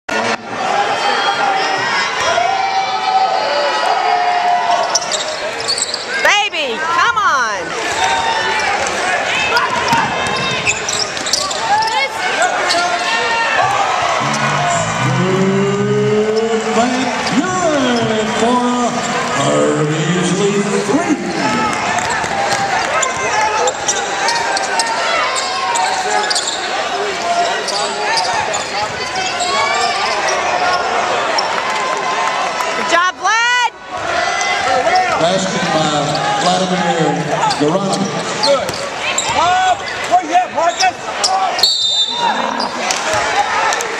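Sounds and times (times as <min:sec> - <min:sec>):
arena crowd noise: 0:00.0 - 0:43.9.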